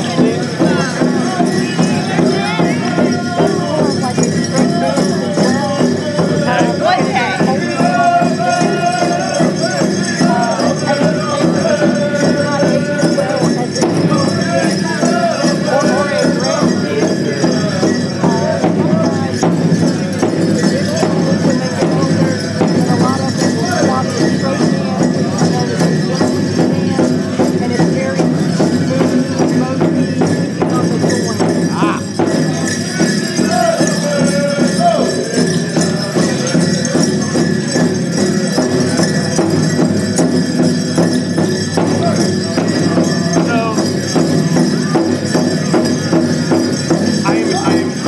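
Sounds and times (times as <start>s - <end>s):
bells and jingles shaking: 0.0s - 48.0s
big drum steady beat: 0.0s - 48.0s
group of singers' wavering voices: 0.0s - 48.0s.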